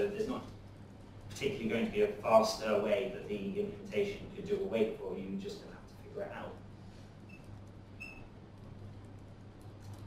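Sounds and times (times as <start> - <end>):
steady low hum: 0.0 - 10.0
faint high squeaks: 7.3 - 8.3.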